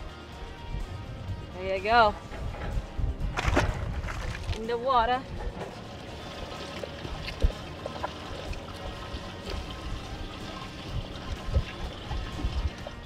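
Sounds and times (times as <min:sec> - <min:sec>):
background music: 0:00.0 - 0:13.0
water trickling and sloshing: 0:02.0 - 0:13.0.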